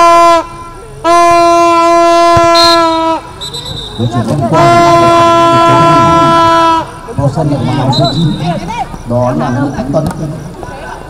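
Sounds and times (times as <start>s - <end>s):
loud horn blast: 0.0s - 7.0s.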